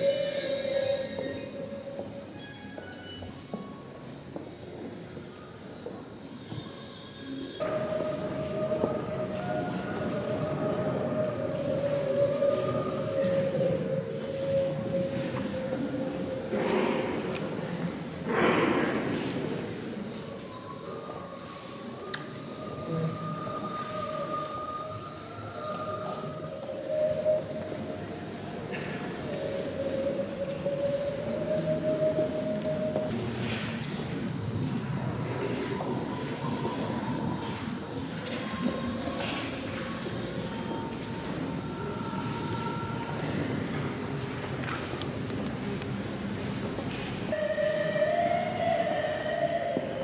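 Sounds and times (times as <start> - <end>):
crowd rustle and murmur: 0.0 - 50.0.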